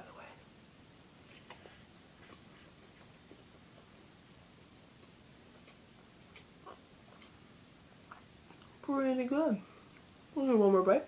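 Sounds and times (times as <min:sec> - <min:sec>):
faint room hiss: 0:00.0 - 0:11.0
person chewing: 0:05.0 - 0:07.4.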